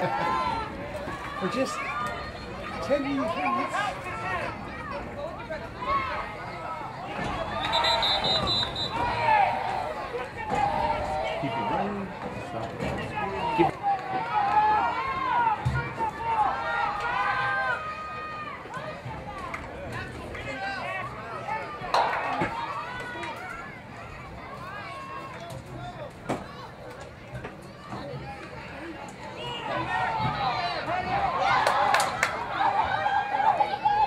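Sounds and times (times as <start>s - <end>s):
people shouting and calling out: 0.0s - 19.5s, 20.5s - 26.8s.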